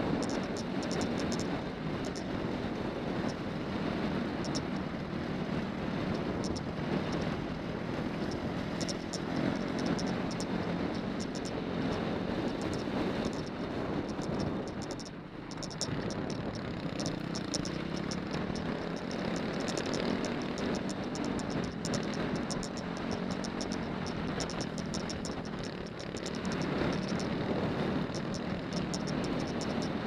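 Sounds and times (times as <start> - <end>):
motorcycle engine running: 0.0 - 30.0
sharp high clicks: 0.2 - 2.3, 4.4 - 4.8, 8.1 - 27.4, 28.0 - 30.0.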